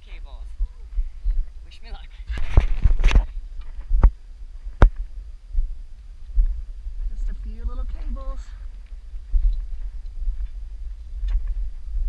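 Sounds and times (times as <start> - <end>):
wind rumbling on microphone: 0.0 - 12.0
rustling: 2.3 - 5.3.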